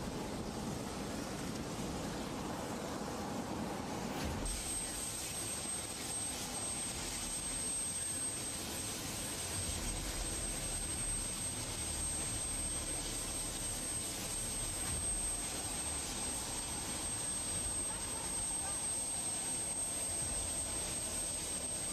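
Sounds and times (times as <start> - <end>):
aircraft turbine engines rushing: 0.0 - 21.9
high-pitched whine: 0.0 - 21.9.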